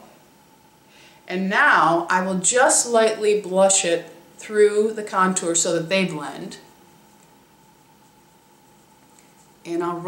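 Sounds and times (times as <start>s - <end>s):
faint steady hiss: 0.0s - 10.0s
faint thin hum: 0.0s - 10.0s.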